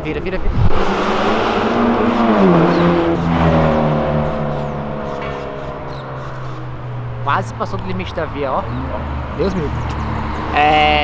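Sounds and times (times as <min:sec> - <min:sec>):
car engine revving past: 0:00.5 - 0:10.6.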